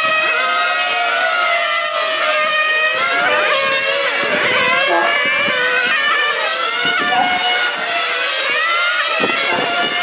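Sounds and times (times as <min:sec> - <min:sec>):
rc car engines whining: 0:00.0 - 0:10.0.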